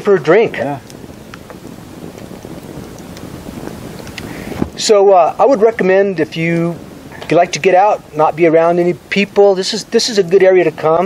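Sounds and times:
wind on microphone: 0:00.0 - 0:11.0
faint clicks: 0:00.8 - 0:04.8.

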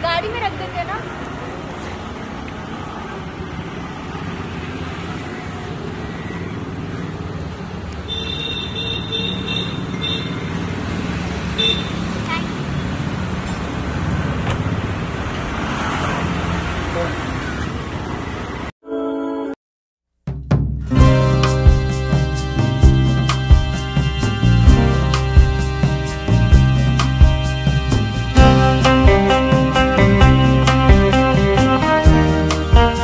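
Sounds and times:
street traffic: 0:00.0 - 0:18.8, 0:20.9 - 0:33.0
car horn toots: 0:21.4 - 0:30.0.

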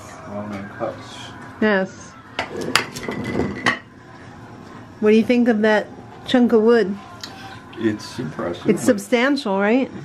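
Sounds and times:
jars clattering on wooden table: 0:02.4 - 0:03.9.

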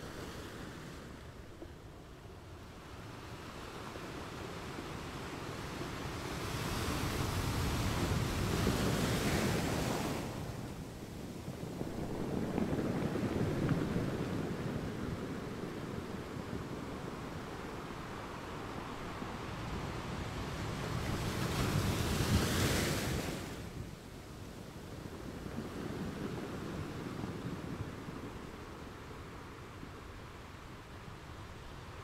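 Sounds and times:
sea waves washing in: 0:02.7 - 0:32.0.

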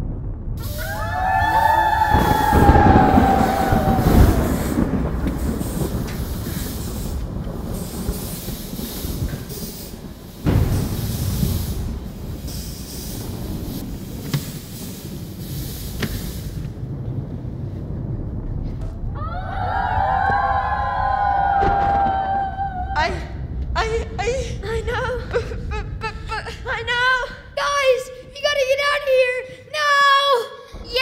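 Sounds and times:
loud steady rushing hiss: 0:00.6 - 0:31.0
wolves howling: 0:00.9 - 0:04.6.

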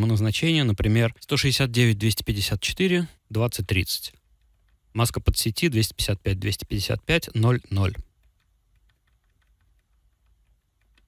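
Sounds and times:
faint irregular clicks: 0:00.0 - 0:11.0.

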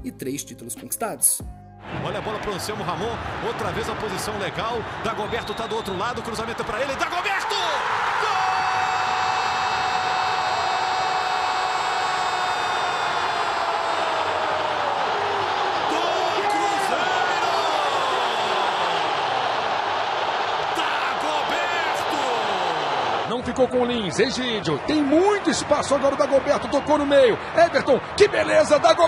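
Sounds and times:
stadium crowd cheering: 0:01.8 - 0:29.0
commentator shouting goal: 0:20.7 - 0:26.8.

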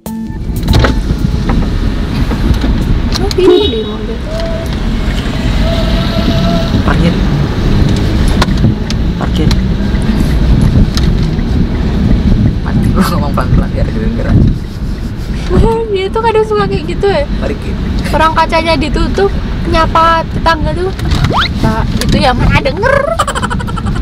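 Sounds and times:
car road and engine rumble: 0:00.0 - 0:24.0
people talking: 0:03.2 - 0:04.6, 0:06.2 - 0:07.2, 0:12.7 - 0:14.5, 0:15.4 - 0:21.0, 0:21.6 - 0:23.6.

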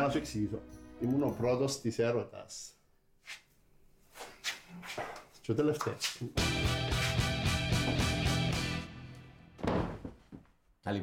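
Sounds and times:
person dropping onto a sofa: 0:09.6 - 0:10.5.

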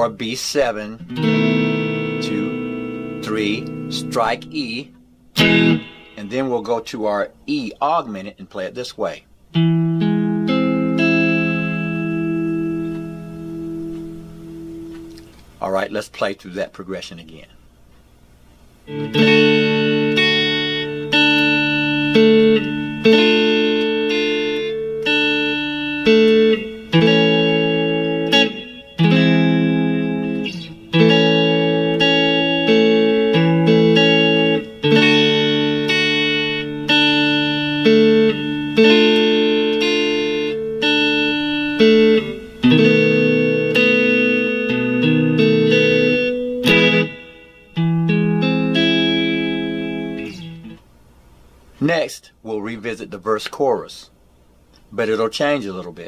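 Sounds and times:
clean electric guitar chords: 0:01.0 - 0:07.8, 0:09.4 - 0:15.6, 0:18.8 - 0:50.9.

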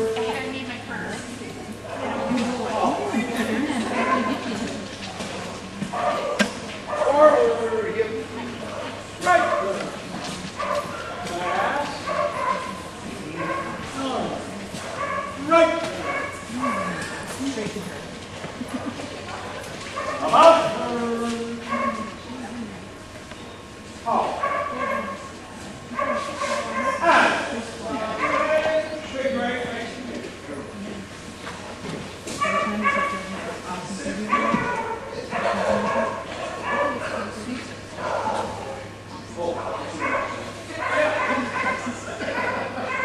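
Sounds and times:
voices murmuring: 0:00.0 - 0:43.0
dog barking: 0:03.9 - 0:04.4, 0:05.9 - 0:07.5, 0:10.6 - 0:12.8, 0:13.4 - 0:13.8, 0:14.8 - 0:17.3, 0:20.0 - 0:20.6, 0:21.7 - 0:22.2, 0:24.4 - 0:25.3, 0:25.9 - 0:27.3, 0:28.1 - 0:28.8, 0:32.4 - 0:33.3, 0:34.3 - 0:37.3, 0:40.0 - 0:43.0.

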